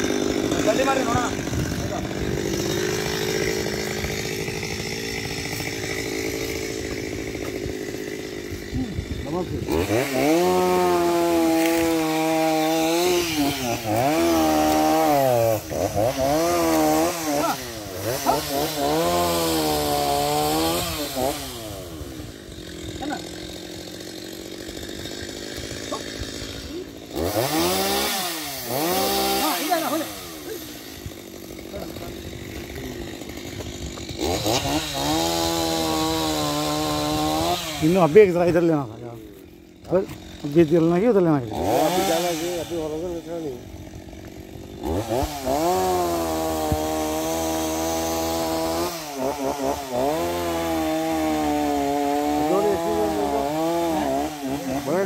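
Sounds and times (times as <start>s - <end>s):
chainsaw idling and revving: 0.0s - 55.0s.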